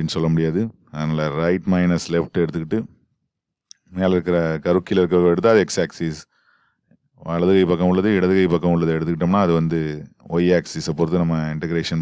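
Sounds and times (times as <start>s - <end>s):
man speaking: 0.0s - 3.0s, 3.7s - 6.3s, 7.2s - 12.0s.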